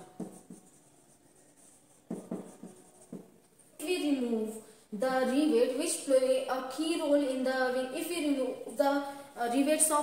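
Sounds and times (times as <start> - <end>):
marker squeaking on whiteboard: 0.0 - 3.6.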